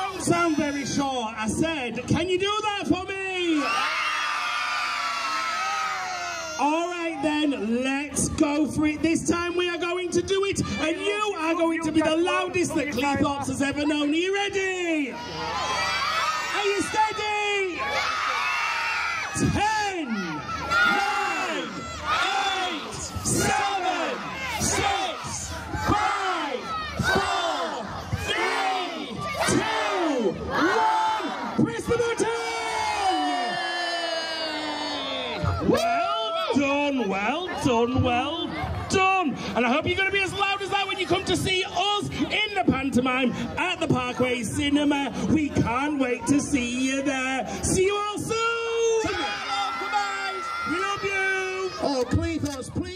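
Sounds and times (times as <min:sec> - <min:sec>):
crowd shouting a countdown: 0:00.0 - 0:52.9
crowd cheering: 0:03.2 - 0:08.1, 0:15.0 - 0:42.0, 0:48.2 - 0:52.9.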